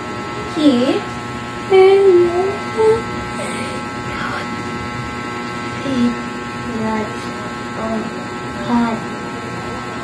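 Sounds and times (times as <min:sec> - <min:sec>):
electrical buzzing hum: 0:00.0 - 0:10.0
faint murmur of voice: 0:00.4 - 0:04.7, 0:05.8 - 0:10.0.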